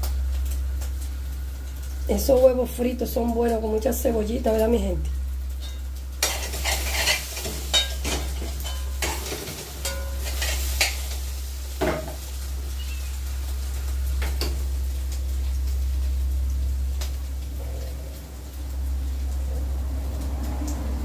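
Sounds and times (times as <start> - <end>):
food sizzling in a frying pan: 0.0 - 21.0
metal utensil scraping a pan: 5.6 - 11.1.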